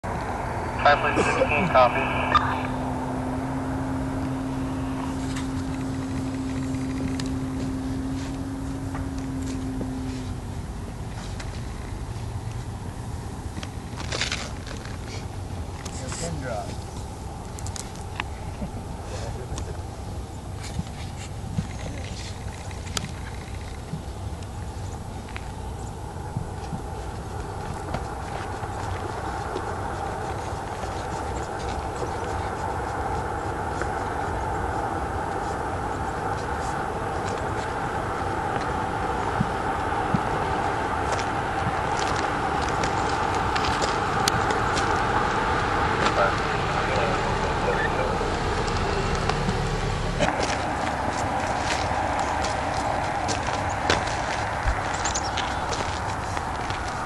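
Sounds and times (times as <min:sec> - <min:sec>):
indistinct voices: 0:00.0 - 0:07.6, 0:29.2 - 0:57.0
car driving past: 0:00.1 - 0:13.2, 0:26.1 - 0:57.0.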